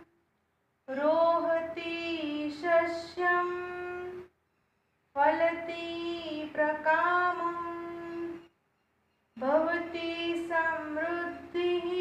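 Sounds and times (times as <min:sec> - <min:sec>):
woman singing: 0:00.9 - 0:04.3, 0:05.2 - 0:08.5, 0:09.4 - 0:12.0.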